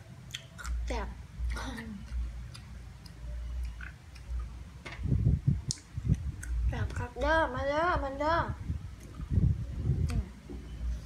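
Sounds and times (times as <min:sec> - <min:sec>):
mouth noises of eating: 0:01.5 - 0:04.6, 0:05.2 - 0:07.0, 0:08.8 - 0:10.5.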